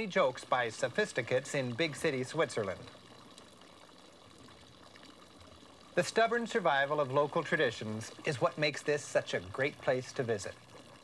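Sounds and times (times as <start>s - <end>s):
fountain water trickling into basin: 0.0s - 11.0s.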